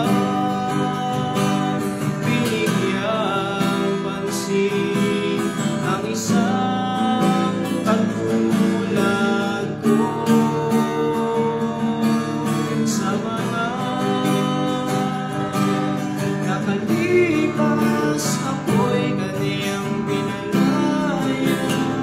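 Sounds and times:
acoustic guitar strumming: 0.0s - 22.0s
man singing: 0.0s - 22.0s.

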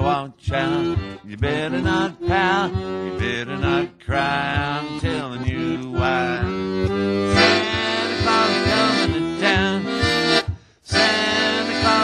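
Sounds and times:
man singing: 0.0s - 12.0s
oom-pah bass beat: 0.0s - 12.0s
piano accordion playing chords: 0.0s - 12.0s.

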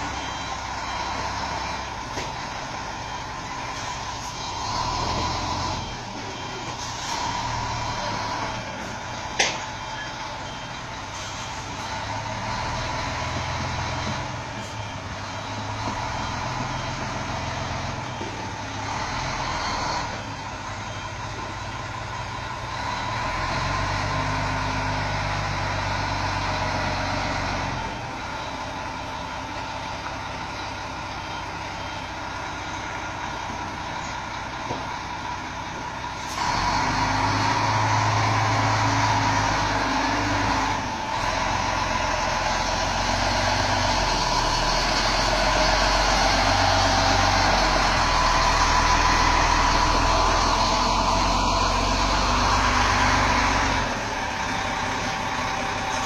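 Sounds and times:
truck diesel engine running: 0.0s - 56.0s.

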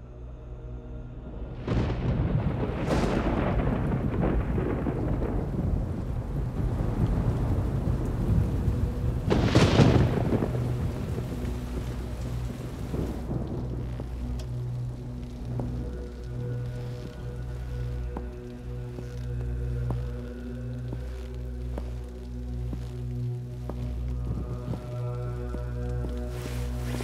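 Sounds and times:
heavy rain: 1.6s - 27.0s
thunderclaps: 1.6s - 27.0s.

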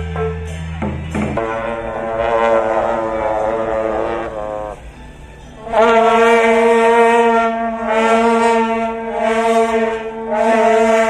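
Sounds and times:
long horns blast: 1.1s - 11.0s.

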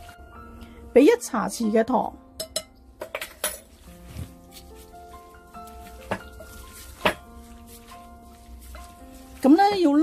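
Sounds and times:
metal spoon clinking on glass bowl: 2.4s - 3.7s.

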